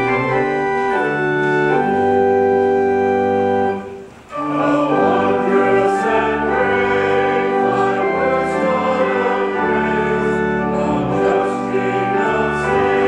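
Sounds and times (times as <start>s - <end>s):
choir singing a hymn: 0.0s - 13.0s
pipe organ: 0.0s - 13.0s.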